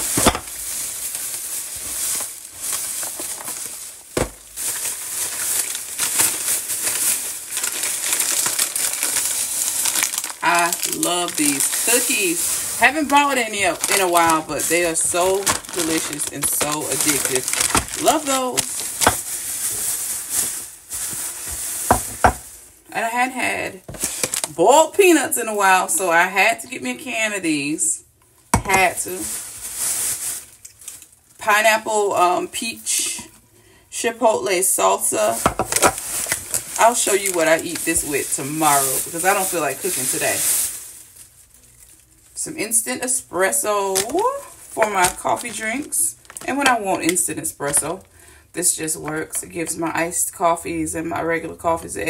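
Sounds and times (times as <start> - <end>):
plastic bags crinkling: 0.0 - 22.8, 23.7 - 24.8, 28.4 - 31.8, 34.7 - 48.3
woman talking: 10.4 - 18.8, 22.9 - 23.8, 24.5 - 28.0, 28.6 - 29.4, 31.4 - 33.3, 33.9 - 35.5, 36.8 - 40.4, 42.4 - 52.0.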